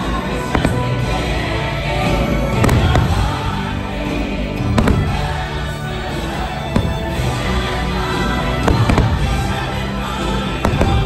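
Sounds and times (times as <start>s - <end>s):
fireworks bangs: 0.0s - 1.4s, 2.0s - 11.0s
fireworks show music: 0.0s - 11.0s.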